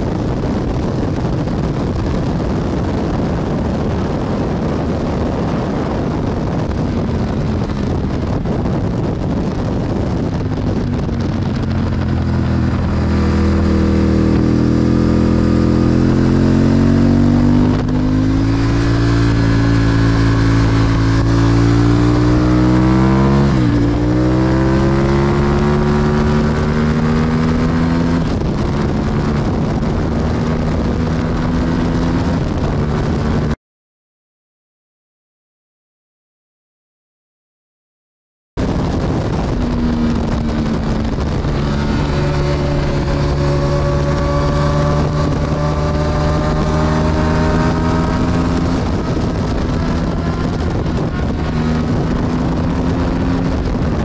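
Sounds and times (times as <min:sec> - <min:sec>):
motorcycle engine revving: 0:00.0 - 0:33.6, 0:38.6 - 0:54.0
wind rush: 0:00.0 - 0:33.6, 0:38.6 - 0:54.0.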